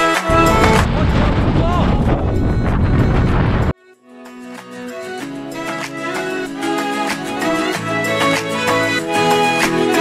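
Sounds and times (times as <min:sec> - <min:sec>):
wind buffeting microphone: 0:00.3 - 0:03.8.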